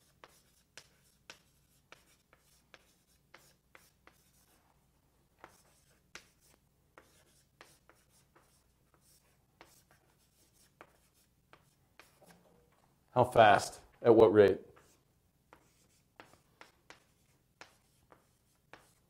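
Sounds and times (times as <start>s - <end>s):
writing taps and scratches on board: 0.0s - 4.6s, 5.4s - 12.4s, 14.7s - 19.0s.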